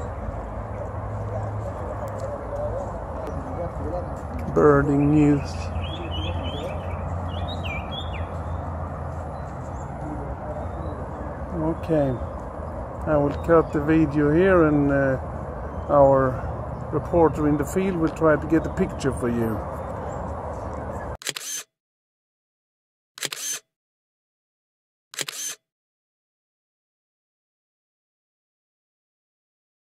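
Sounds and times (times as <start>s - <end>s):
camera shutter clicks: 21.2s - 21.7s, 23.2s - 23.6s, 25.2s - 25.6s.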